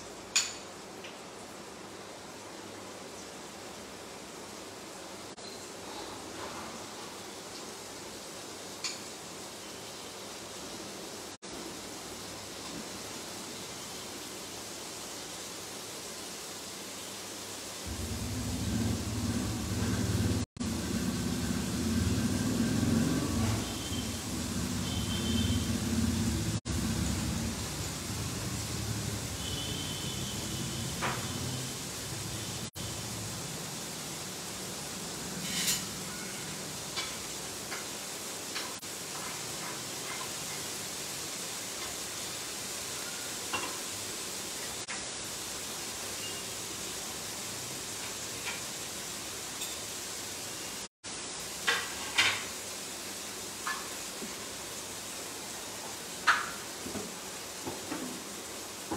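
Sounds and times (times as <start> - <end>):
food sizzling in a pan: 0.0 - 58.9
low rumble: 17.9 - 23.6.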